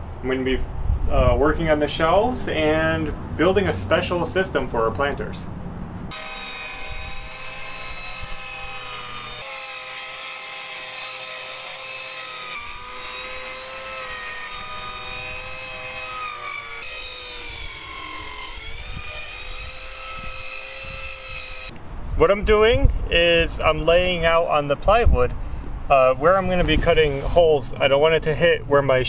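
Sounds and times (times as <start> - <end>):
circular saw cutting plywood: 6.1 - 21.7, 26.1 - 27.7.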